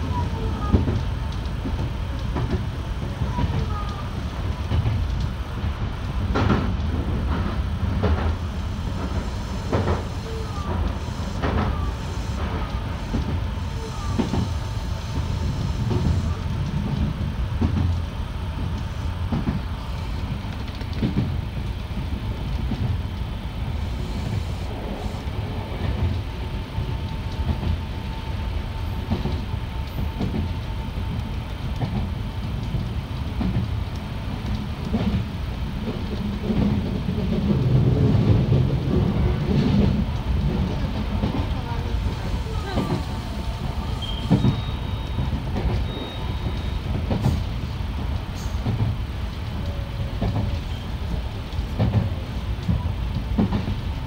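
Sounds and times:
train wheels and motors rumbling: 0.0 - 54.0.

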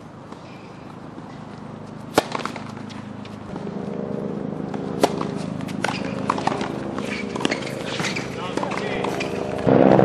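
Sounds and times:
steady low hum: 0.0 - 10.0
tennis balls bouncing and hit: 0.0 - 10.0.

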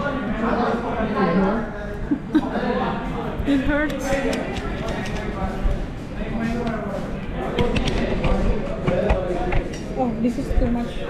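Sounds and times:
indistinct conversation: 0.0 - 11.0.

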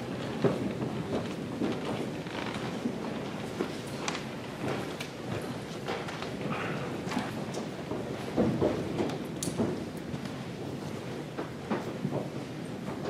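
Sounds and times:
low hubbub of room: 0.0 - 13.0
marching footsteps on wooden floor: 0.0 - 13.0.

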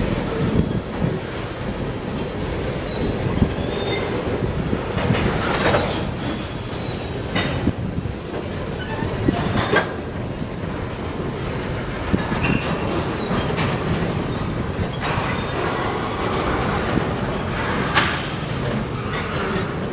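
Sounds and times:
train wheels rumbling on rail: 0.0 - 19.9.

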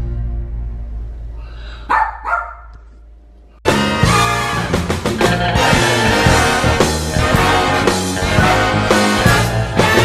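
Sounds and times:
dog barking: 1.9 - 2.9.

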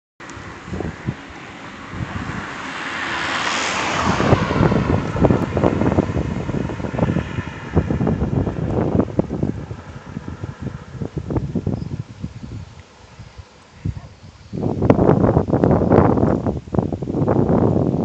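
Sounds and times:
car passing by: 0.2 - 11.7
wind buffeting microphone: 0.2 - 18.0.

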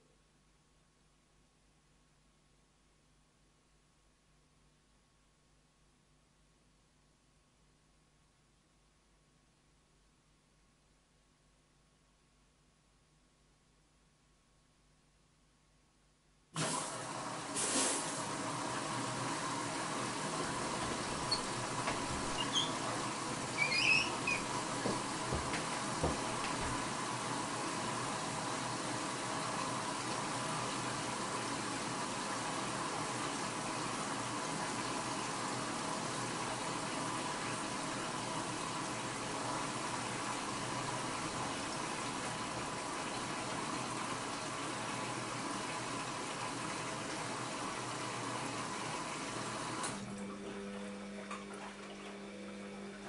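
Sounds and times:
washing machine hum: 16.5 - 53.0
water rushing into washing machine: 16.6 - 53.0.

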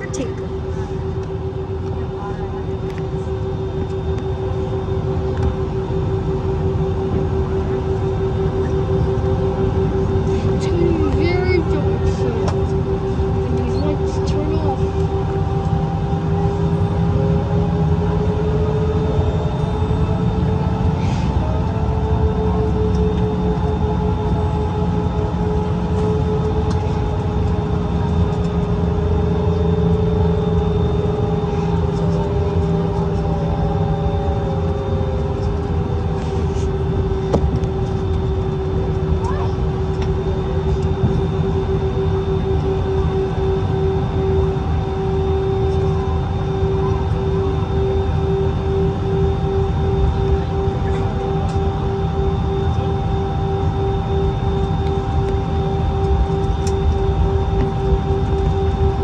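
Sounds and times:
humming whine: 0.0 - 59.0
jet engines rumbling: 0.0 - 59.0.

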